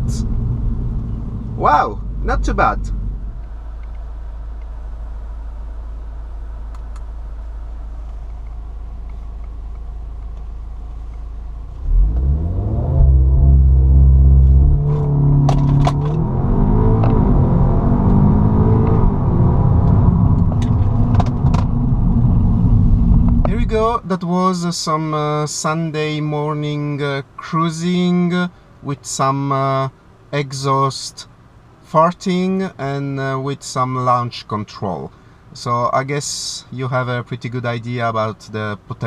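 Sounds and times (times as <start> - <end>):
car engine revving: 0.0 - 3.9, 11.6 - 24.0
exhaust cracks: 0.0 - 4.0, 11.1 - 24.0.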